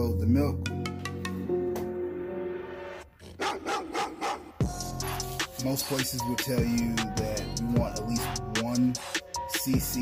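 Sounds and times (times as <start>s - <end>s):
background music: 0.0s - 10.0s
dog barking: 3.4s - 4.6s.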